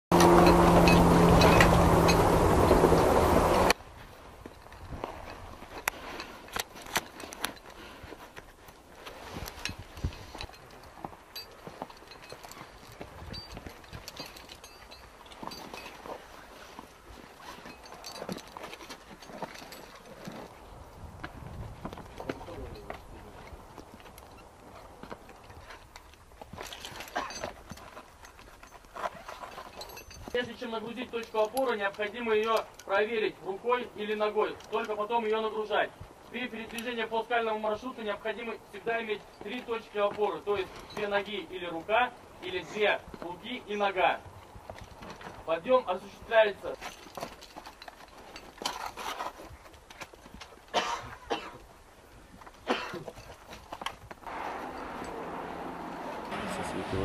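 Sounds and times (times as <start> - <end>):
boots and kit scraping on rock: 42.6 - 51.5.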